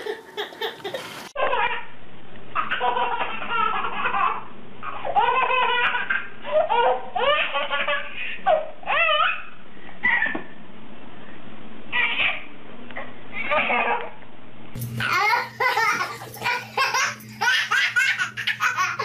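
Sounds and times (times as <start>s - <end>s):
baby laughing: 0.0s - 1.8s, 2.6s - 10.4s, 15.0s - 19.0s.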